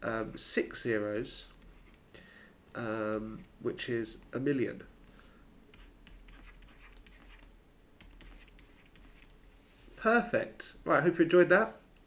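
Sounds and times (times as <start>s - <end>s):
stylus scratching on tablet: 1.5s - 2.0s, 5.7s - 9.4s.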